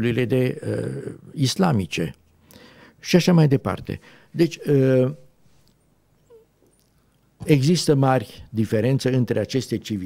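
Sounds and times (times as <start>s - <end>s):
man saying uh: 0.0s - 2.0s.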